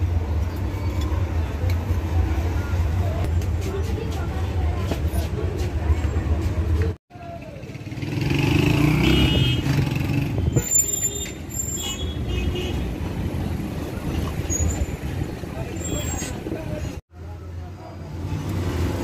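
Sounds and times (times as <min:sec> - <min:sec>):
motor traffic passing: 0:00.0 - 0:17.0
voices: 0:13.8 - 0:18.8.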